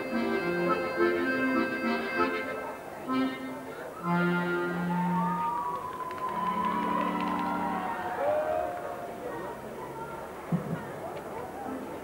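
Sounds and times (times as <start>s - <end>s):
accordion low sustained chord: 0.0s - 4.9s
faint clicks: 5.7s - 7.6s.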